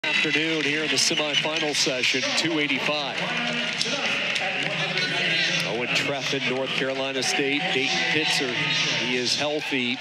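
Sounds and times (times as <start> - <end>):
man speaking: 0.1 - 3.2.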